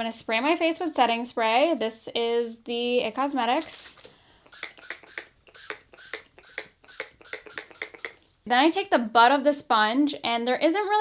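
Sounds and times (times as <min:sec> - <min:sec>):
spray bottle spraying: 0:03.8 - 0:08.3.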